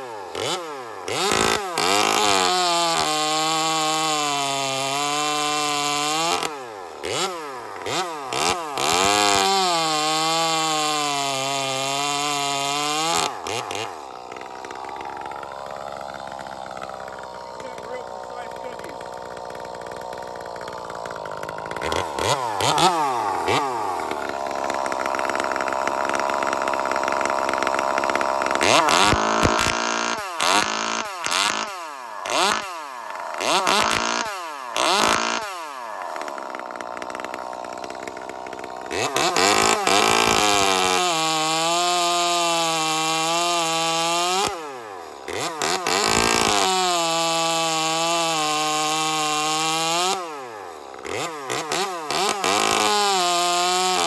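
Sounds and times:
chainsaw revving: 0.0s - 54.0s.

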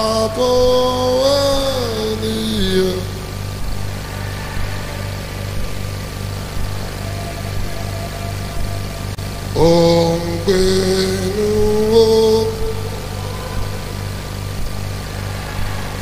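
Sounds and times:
person singing: 0.0s - 6.1s, 6.7s - 14.2s
low keyboard pad: 0.0s - 16.0s
pulsing bass: 0.0s - 16.0s.

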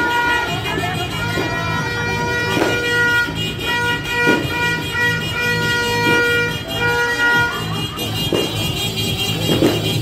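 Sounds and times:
horn long steady note: 0.0s - 10.0s
loud music with bass beat: 0.0s - 10.0s.

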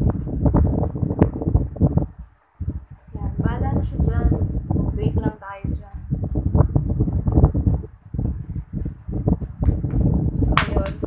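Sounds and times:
microphone rumbling and crackling: 0.0s - 11.0s.

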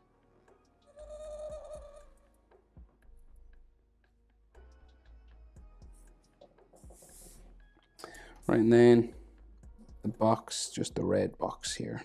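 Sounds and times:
scratchy marker strokes: 6.8s - 7.6s.

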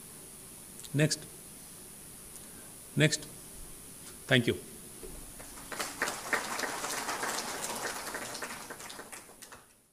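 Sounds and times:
audience applauding: 5.4s - 9.9s.

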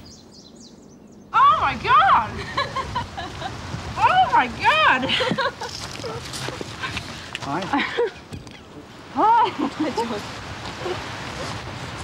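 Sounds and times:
women laughing: 2.3s - 3.7s, 4.8s - 6.2s, 7.6s - 8.3s, 9.2s - 10.2s.

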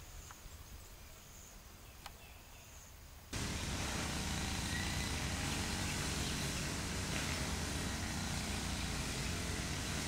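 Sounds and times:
faint outdoor ambience: 0.0s - 10.0s
loud low outdoor noise: 0.0s - 10.0s.

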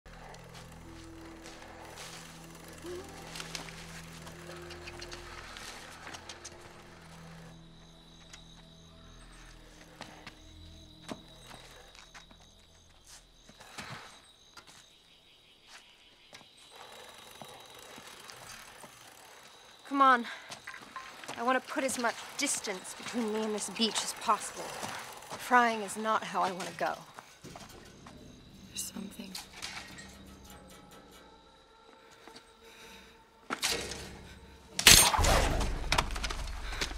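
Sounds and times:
soft film score: 0.1s - 36.9s.

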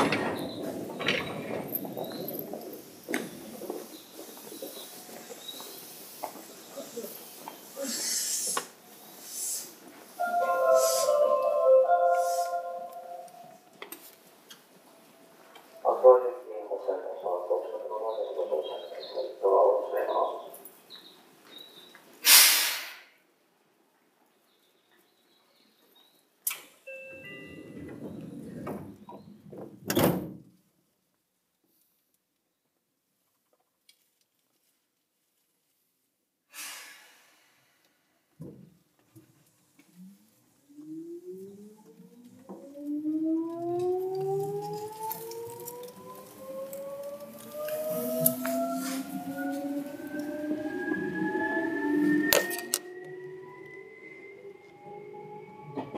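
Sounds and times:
train doors sliding: 0.0s - 4.2s
train rumble: 0.0s - 7.7s, 8.7s - 20.6s, 27.1s - 29.9s, 43.5s - 55.9s
brief door warning tone: 10.2s - 13.6s, 26.9s - 28.7s
electric train motor whine rising: 39.9s - 55.9s.

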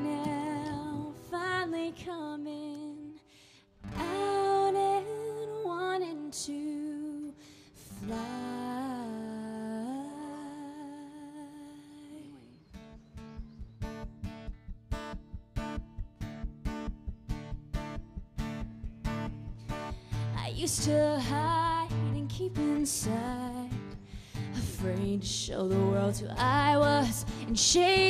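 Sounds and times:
acoustic guitar strumming: 0.0s - 2.1s, 12.6s - 28.0s
wordless female vocal: 0.0s - 12.6s, 20.0s - 28.0s.

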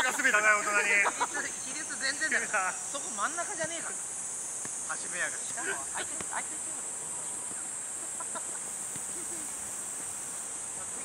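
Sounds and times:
faint distant calls: 0.0s - 11.0s
insects droning: 0.0s - 11.0s.

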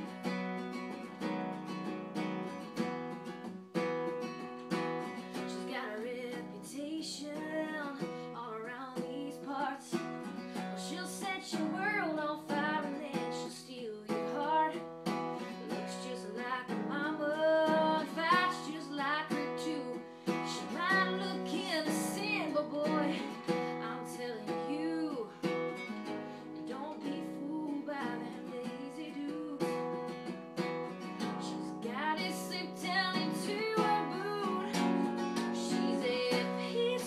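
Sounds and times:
woman singing country song: 4.2s - 37.0s.

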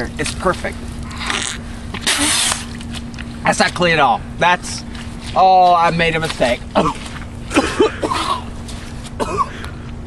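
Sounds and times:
person slurping water: 1.1s - 2.8s
hissing splutter: 1.2s - 2.9s.

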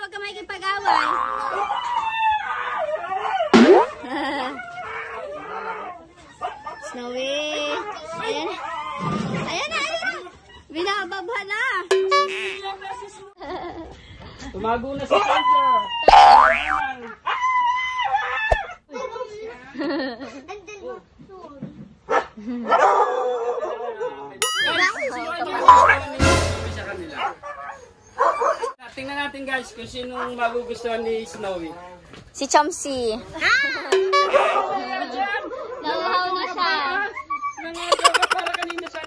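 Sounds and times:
dogs play-fighting and crying: 0.8s - 11.0s, 16.8s - 18.9s, 22.0s - 25.5s, 27.3s - 28.8s, 34.4s - 39.0s
dogs howling and whining: 1.4s - 3.6s, 4.6s - 9.2s, 17.2s - 18.8s, 37.0s - 37.8s
cartoon boing sound effect: 3.5s - 4.1s, 11.9s - 12.8s, 16.1s - 16.8s, 24.4s - 25.0s, 25.6s - 26.4s.

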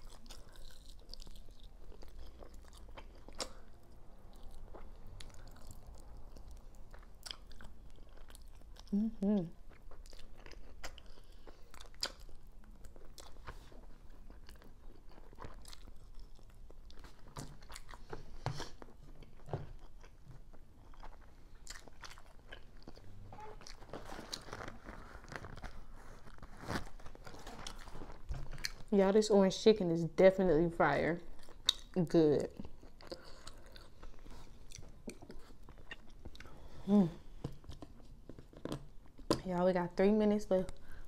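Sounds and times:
chewing crispy chicken: 0.0s - 28.9s, 31.3s - 36.6s
wet mouth chewing clicks: 9.7s - 13.4s
person talking: 39.4s - 40.7s.

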